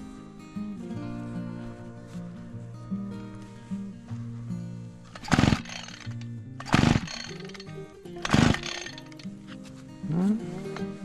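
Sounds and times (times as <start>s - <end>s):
background music: 0.0s - 11.0s
small engine pull-start bursts: 5.1s - 9.3s.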